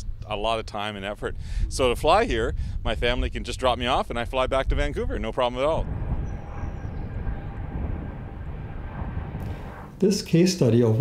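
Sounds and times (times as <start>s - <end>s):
turboprop airplane engine rumble: 0.0s - 10.4s.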